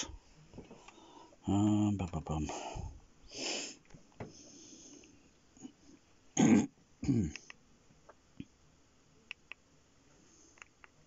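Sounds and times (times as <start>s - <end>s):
person breathing: 0.0s - 1.4s, 2.5s - 5.3s.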